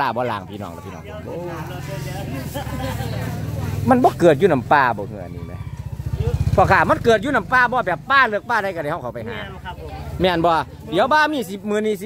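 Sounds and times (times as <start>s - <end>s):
faint voices: 0.0s - 12.0s
vehicle engine running: 1.2s - 11.8s.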